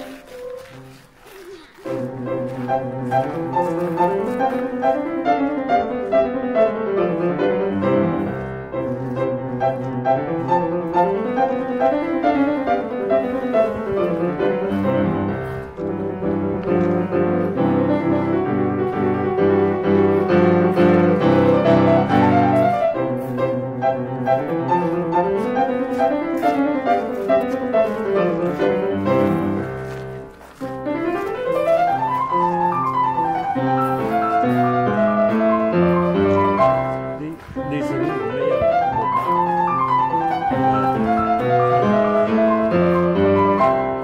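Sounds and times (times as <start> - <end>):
classical piano music: 0.0 - 44.0.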